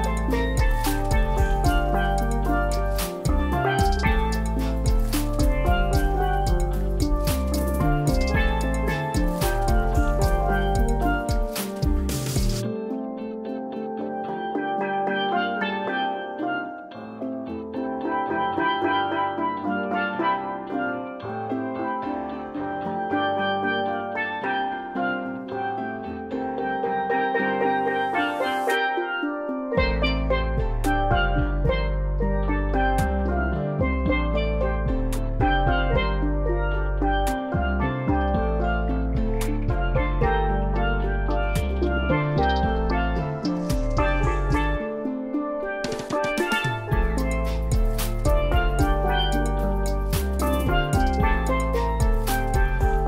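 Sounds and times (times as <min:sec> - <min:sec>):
deep bass: 0:00.0 - 0:12.6, 0:29.8 - 0:44.9, 0:46.9 - 0:53.0
regular drum beat: 0:00.0 - 0:12.6, 0:39.2 - 0:44.9, 0:45.8 - 0:53.0
steel pans playing a melody: 0:00.0 - 0:53.0.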